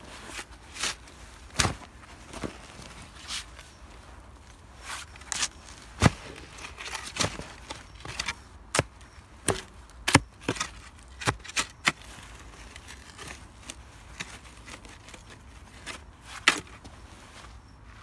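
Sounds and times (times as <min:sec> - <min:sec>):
spade chopping into stony soil: 0:08.0 - 0:12.0.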